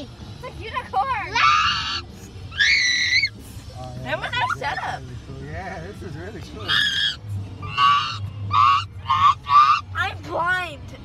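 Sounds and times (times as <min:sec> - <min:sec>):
squealing voice: 0:01.4 - 0:03.3, 0:06.6 - 0:10.0.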